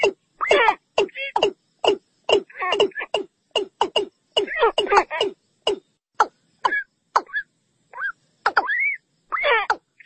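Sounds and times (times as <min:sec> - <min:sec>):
bird calling: 0:00.0 - 0:10.0.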